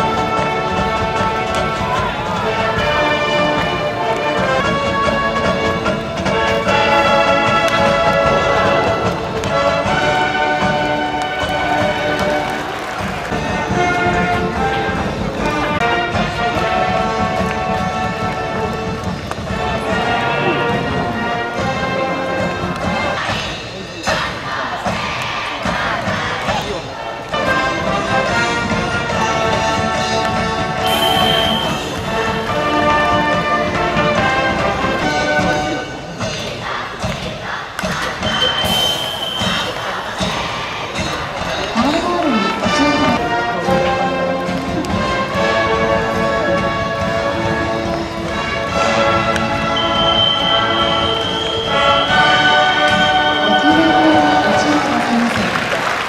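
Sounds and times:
band playing held brass notes: 0.0 - 23.4, 27.3 - 36.1, 38.3 - 56.0
voices singing along: 22.8 - 27.3, 35.9 - 43.2, 49.6 - 55.3.

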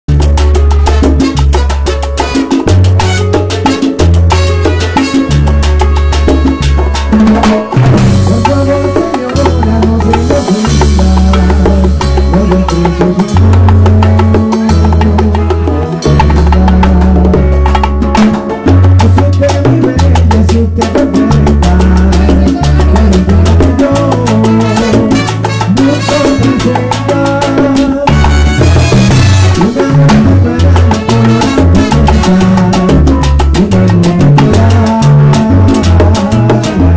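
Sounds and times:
bongos struck rhythmically: 0.1 - 36.9
low bass line: 0.1 - 36.9
salsa band playing: 0.1 - 36.9.

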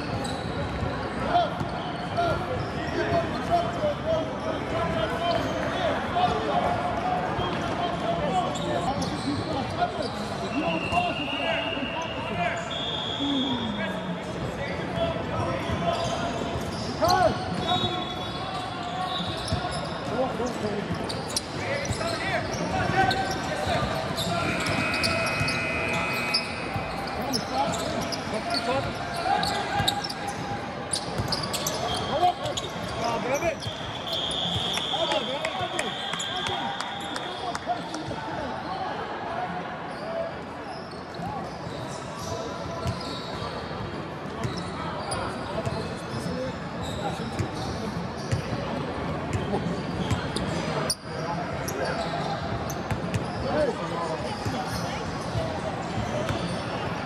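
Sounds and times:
murmur of many voices: 0.0 - 57.0.

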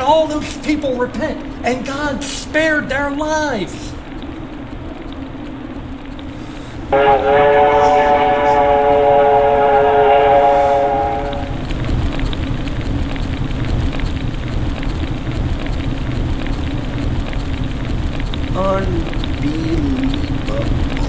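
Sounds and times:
fire burning with crackles: 0.0 - 21.0
cartoon steam whistle: 6.9 - 11.6.

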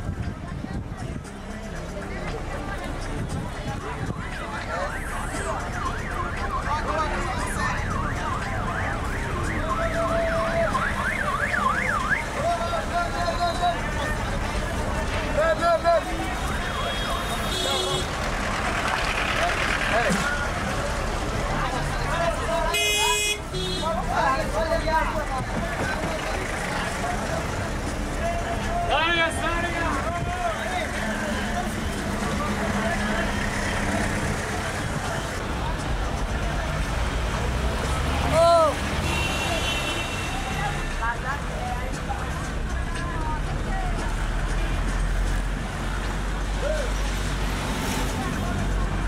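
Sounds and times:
steady traffic noise: 0.0 - 49.0
vehicle horn tooting: 16.7 - 18.1, 22.7 - 24.0, 39.0 - 40.6.

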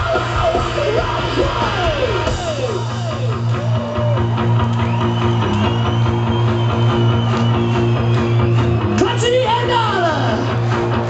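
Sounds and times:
bass guitar: 0.0 - 11.0
drums: 0.0 - 11.0.

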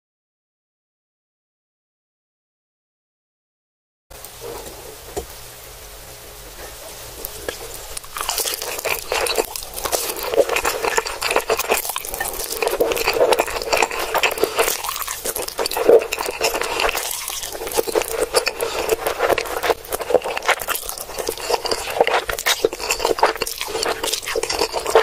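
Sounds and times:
slurping and chewing noodles: 7.2 - 25.0.

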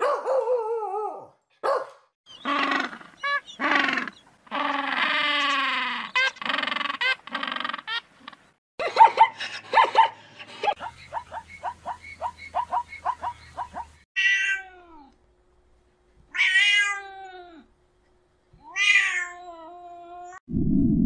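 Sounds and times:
cat meowing: 14.2 - 15.1, 16.3 - 17.7, 18.6 - 20.4.

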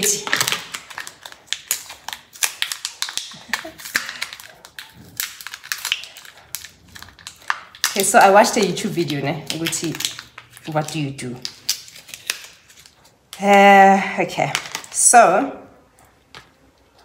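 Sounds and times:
plastic packet crinkling: 0.0 - 13.3, 14.5 - 15.0.

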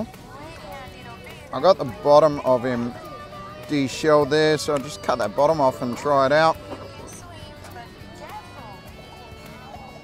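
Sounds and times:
background chatter of voices: 0.0 - 10.0
music playing: 0.0 - 10.0.

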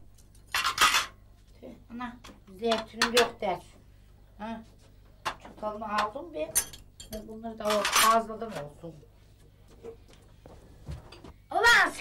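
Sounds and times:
cutlery and dishes clinking: 0.1 - 1.2, 6.5 - 8.2.

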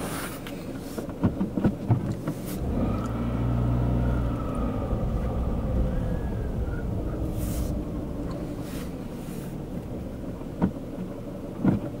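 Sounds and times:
car engine drone: 0.0 - 12.0
road rumble: 0.0 - 12.0
sharp clicks and knocks: 1.0 - 2.4, 9.7 - 12.0.

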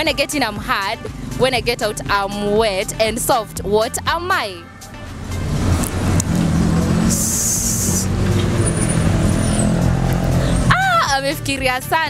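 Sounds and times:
heavy vehicle engine rumbling: 0.0 - 12.0
sharp hiss: 7.1 - 8.1.

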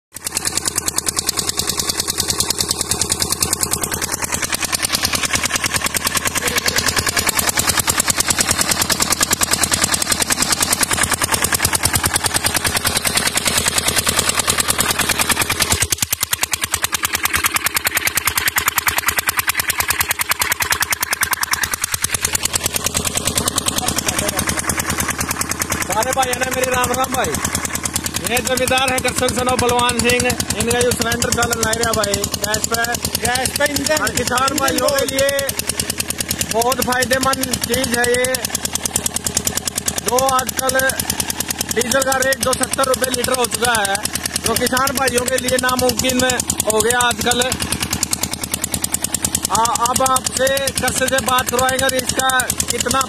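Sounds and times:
small pump engine running: 0.1 - 53.0.

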